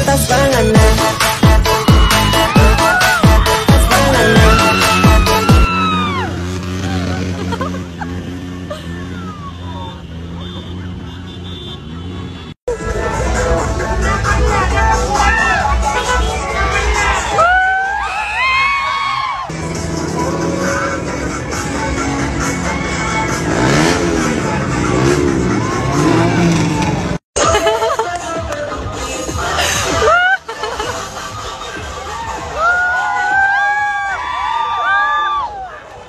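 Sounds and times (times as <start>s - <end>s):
loud music: 0.0s - 7.5s, 12.7s - 18.1s, 19.5s - 33.6s
vehicle engines revving: 0.0s - 17.8s, 19.0s - 32.5s
voices: 0.0s - 17.8s.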